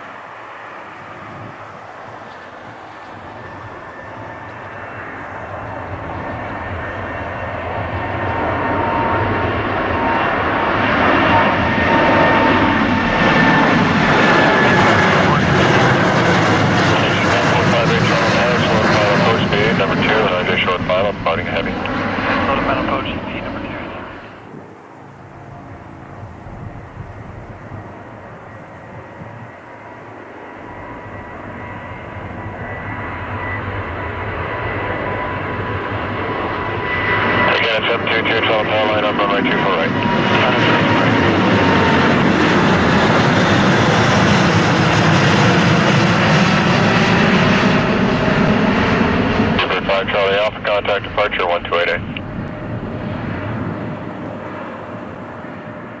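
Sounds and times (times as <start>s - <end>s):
departing jet engine noise: 0.0s - 56.0s
jet engines roaring at takeoff: 0.0s - 56.0s.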